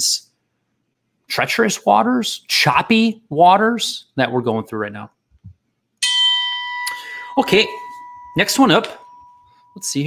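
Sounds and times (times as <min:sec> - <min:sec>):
bell-like chime ringing: 0:06.0 - 0:10.0.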